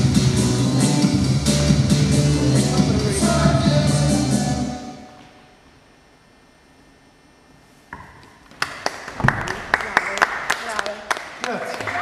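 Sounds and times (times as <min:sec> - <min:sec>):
audience applause: 0:08.6 - 0:12.0.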